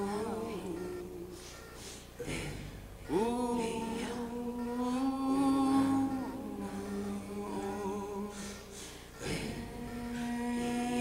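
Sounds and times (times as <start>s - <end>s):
man singing long notes: 2.2s - 11.0s.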